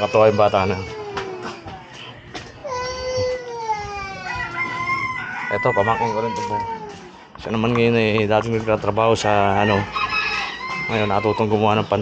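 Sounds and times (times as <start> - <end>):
roosters crowing: 0.0 - 7.6, 8.4 - 12.0.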